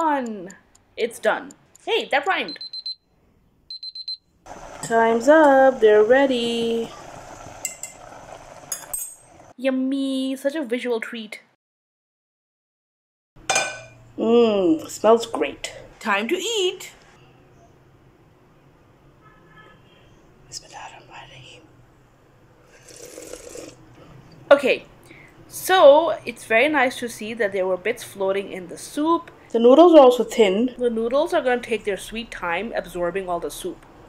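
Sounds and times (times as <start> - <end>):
soup bubbling: 4.5 - 9.5, 22.6 - 23.9.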